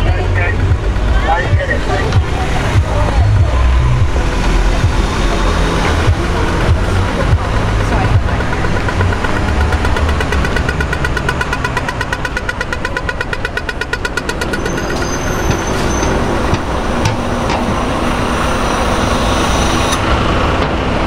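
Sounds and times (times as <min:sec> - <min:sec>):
low traffic rumble: 0:00.0 - 0:21.0
pedestrian crossing signal beeping: 0:03.6 - 0:18.5.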